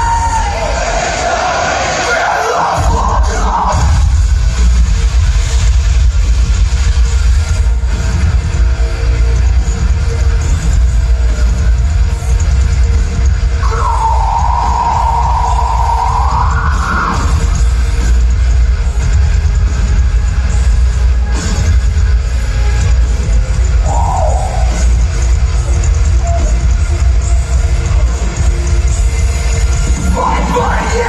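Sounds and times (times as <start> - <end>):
heavy drums and bass: 0.0 - 31.0.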